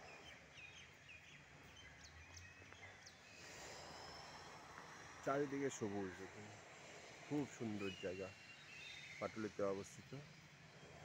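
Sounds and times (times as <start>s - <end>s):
distant bird chirps: 0.0s - 11.0s
faint high hiss: 3.2s - 10.7s.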